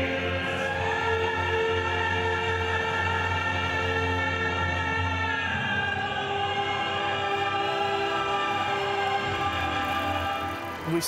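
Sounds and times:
operatic singing: 0.0 - 11.0.

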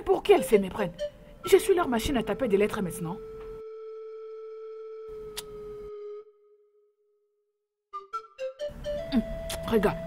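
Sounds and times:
held synthesizer tone: 1.0 - 6.9.

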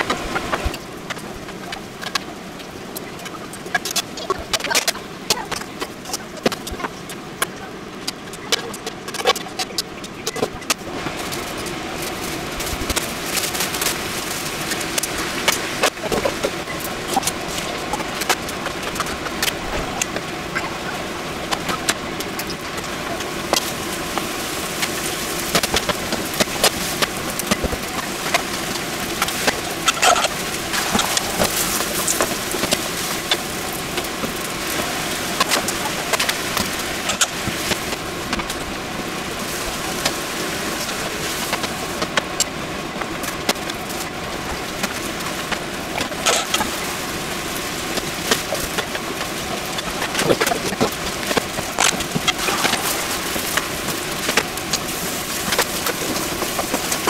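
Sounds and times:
food sizzling in a pan: 29.2 - 36.6, 52.2 - 57.0.

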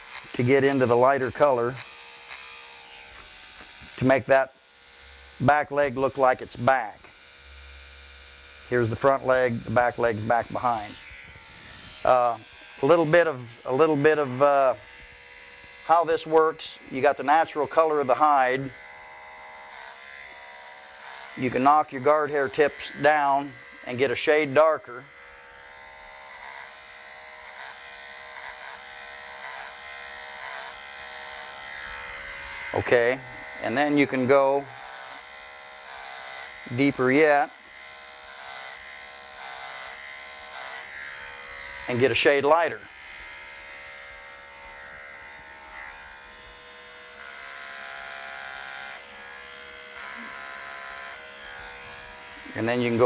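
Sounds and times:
electric hair clippers buzzing: 0.0 - 53.0.

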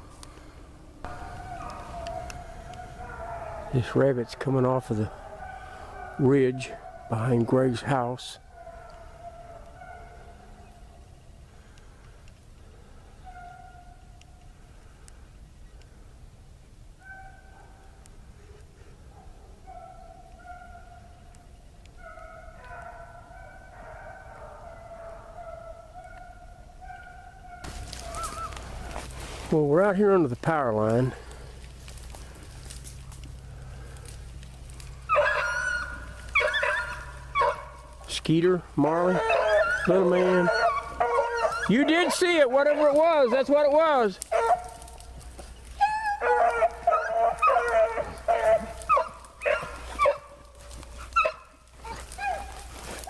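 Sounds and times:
hounds baying in the distance: 0.0 - 14.8, 16.9 - 53.0.

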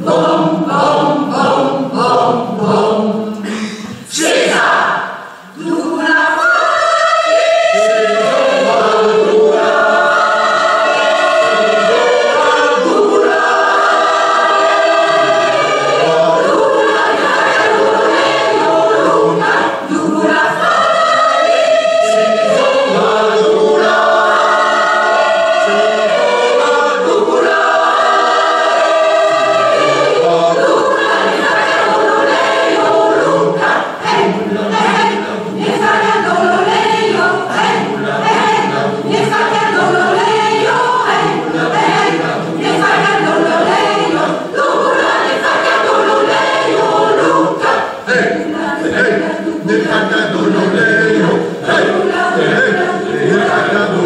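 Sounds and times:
choir singing in harmony: 0.0 - 54.0.

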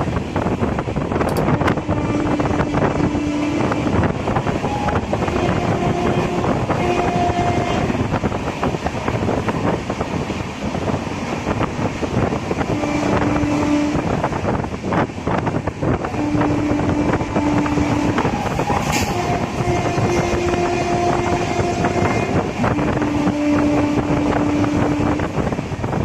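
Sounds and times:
train wheels rumbling on rails: 0.0 - 26.0
train horn blasts: 1.3 - 8.3, 12.6 - 14.5, 16.0 - 25.6.

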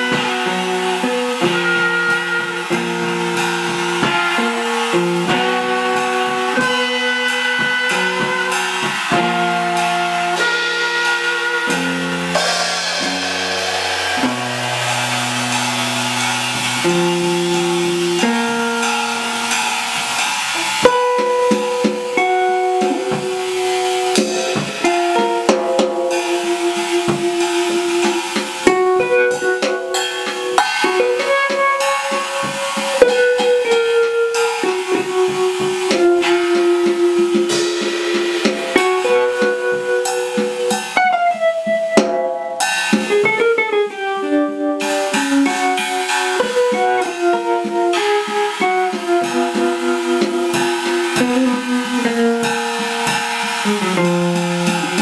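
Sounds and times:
drum kit played with sticks: 0.0 - 55.0
electric guitar playing jazz: 0.0 - 55.0.

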